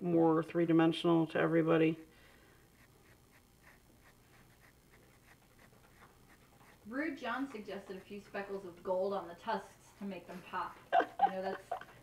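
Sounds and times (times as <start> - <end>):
pencil scratching on paper: 2.8 - 10.9.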